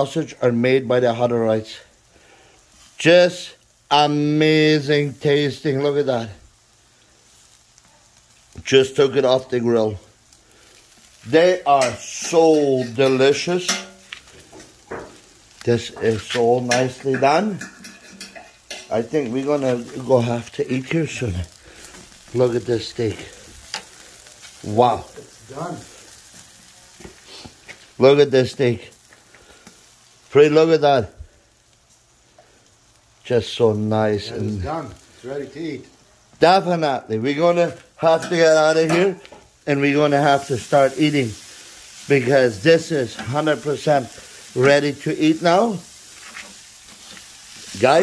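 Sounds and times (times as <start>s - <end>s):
steaks sizzling on a grill: 0.0s - 48.0s
faint crackles and clicks: 6.9s - 30.4s, 45.9s - 48.0s.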